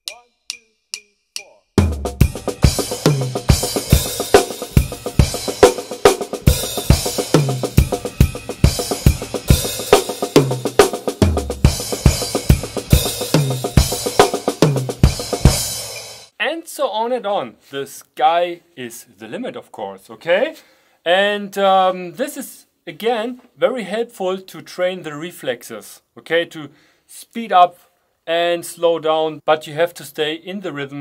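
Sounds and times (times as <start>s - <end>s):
drum kit played fast: 1.8s - 16.3s.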